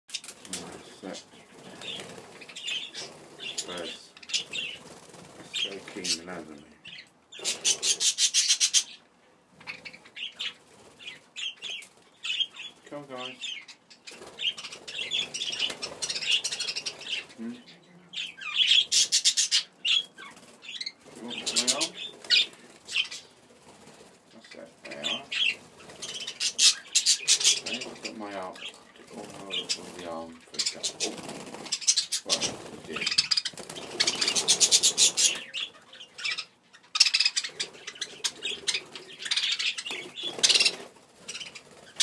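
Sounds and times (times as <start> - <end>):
rapid wingbeats: 0.1 - 6.4, 18.9 - 35.5, 37.5 - 42.0
budgerigars chirping: 0.1 - 23.5, 24.4 - 42.0.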